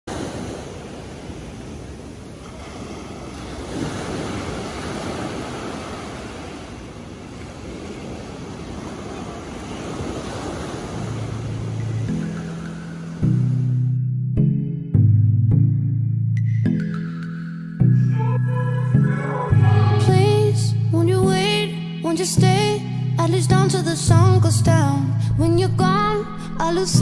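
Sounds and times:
waves washing on beach: 0.0 - 13.7.

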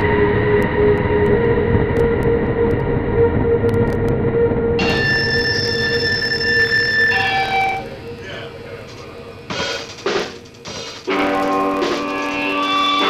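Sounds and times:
high-pitched squealing tones: 0.0 - 8.8
rumbling noise: 0.0 - 13.0.

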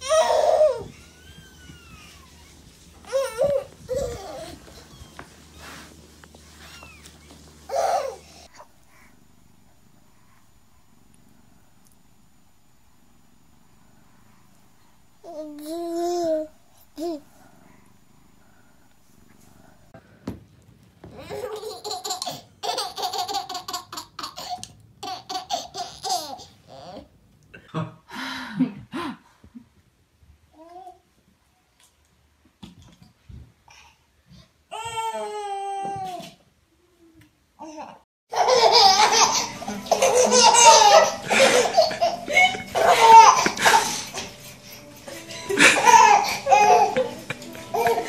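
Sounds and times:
baby giggling: 21.2 - 27.0, 38.3 - 44.2, 45.5 - 48.0
toddler laughing: 21.2 - 27.0, 38.3 - 44.2, 45.5 - 48.0.

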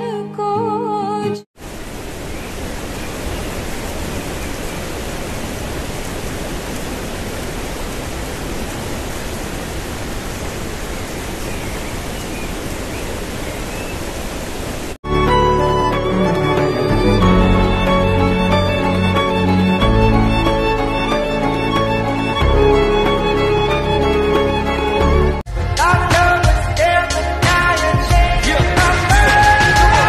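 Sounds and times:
waterfall rushing: 1.6 - 15.3
background music: 15.0 - 30.0.

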